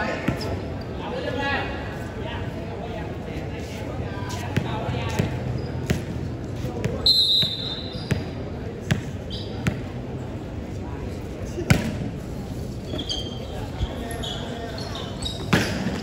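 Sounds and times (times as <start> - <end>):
crowd chatter: 0.0 - 16.0
referee whistle blast: 7.0 - 8.0.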